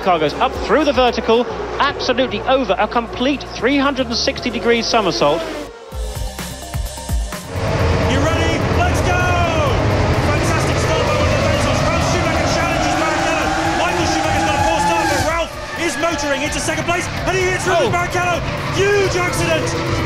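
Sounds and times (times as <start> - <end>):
racing car engines revving: 0.0 - 5.8, 6.5 - 20.0.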